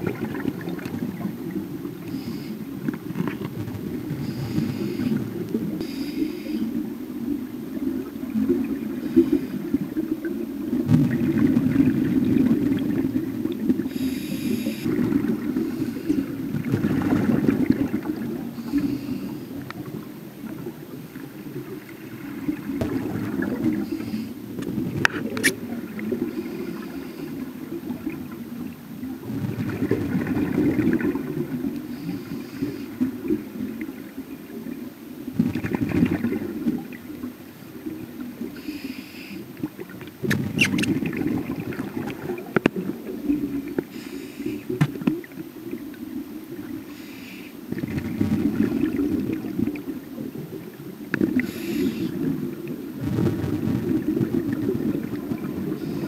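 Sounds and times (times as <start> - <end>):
exhaled bubbles: 0.0 - 38.6, 39.6 - 46.8, 47.7 - 56.0
regulator breathing underwater: 2.0 - 2.8, 4.1 - 6.8, 13.8 - 16.4, 18.5 - 19.6, 23.6 - 24.5, 38.5 - 39.6, 43.8 - 44.8, 46.8 - 47.8, 51.3 - 52.4, 55.6 - 56.0
muffled low rumble: 53.0 - 55.8.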